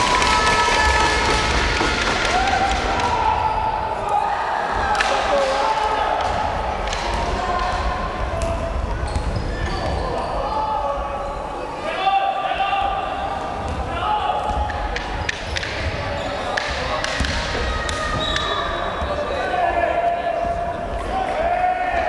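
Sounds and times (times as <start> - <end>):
voices echoing in sports hall: 0.0 - 22.0.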